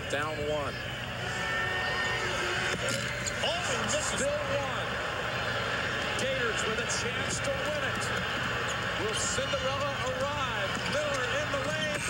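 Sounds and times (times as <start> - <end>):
crowd din: 0.0 - 12.0.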